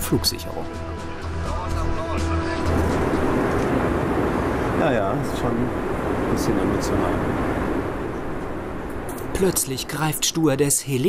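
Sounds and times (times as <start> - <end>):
music: 0.0 - 3.8
airplane cabin noise: 2.4 - 10.1.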